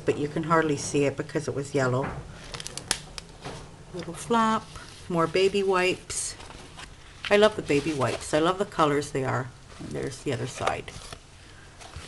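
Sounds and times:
paper pages rustling: 4.7s - 8.6s.

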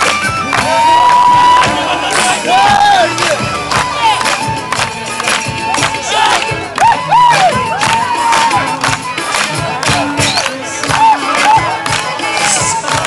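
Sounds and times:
steady drumbeat: 0.0s - 13.0s
crowd whooping and shouting: 0.3s - 5.0s, 5.8s - 13.0s.

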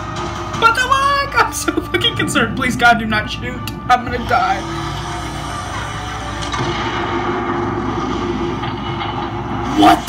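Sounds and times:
low steady rumble: 0.8s - 9.6s.

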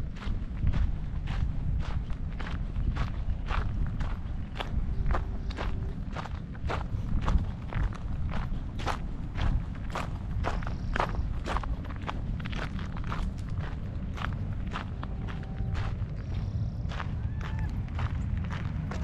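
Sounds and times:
footsteps crunching on gravel: 0.0s - 19.0s
low uneven rumble: 0.0s - 19.0s.

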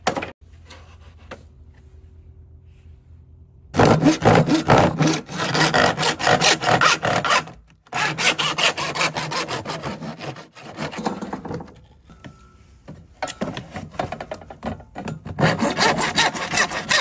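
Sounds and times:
hand saw cutting plastic: 3.8s - 11.7s, 15.1s - 17.0s.

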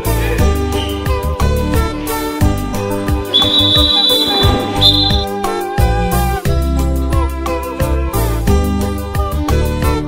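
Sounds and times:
background music: 0.0s - 10.0s
high whistle tone: 3.3s - 6.0s.

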